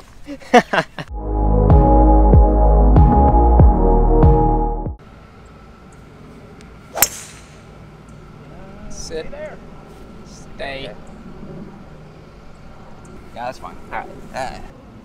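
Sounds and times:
golf club striking ball: 6.9s - 7.7s.

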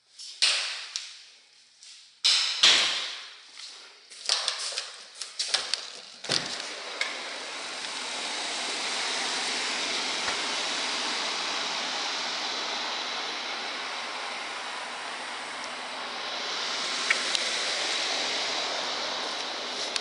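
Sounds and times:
air conditioner fan whooshing: 6.2s - 20.0s.

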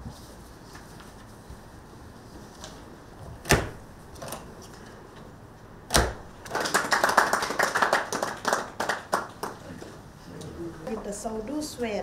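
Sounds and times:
people clapping: 6.4s - 10.0s.

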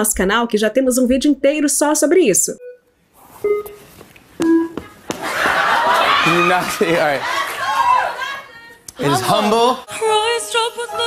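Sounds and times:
short electronic beeps: 2.6s - 4.8s.

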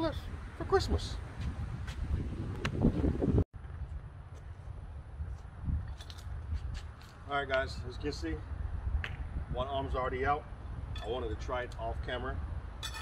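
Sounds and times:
wind buffeting microphone: 0.0s - 7.0s, 7.6s - 12.8s.

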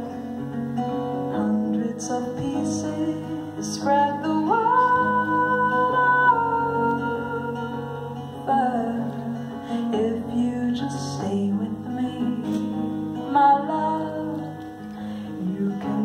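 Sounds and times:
acoustic guitar: 0.0s - 16.0s
woman singing: 1.1s - 16.0s.

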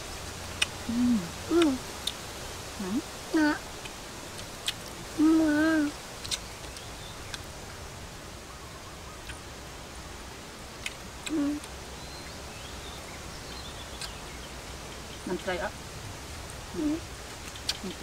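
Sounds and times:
faint steady background noise: 0.0s - 18.0s
person humming while eating: 0.8s - 1.8s, 2.8s - 3.6s, 5.0s - 5.9s, 11.2s - 11.7s, 16.7s - 17.1s.

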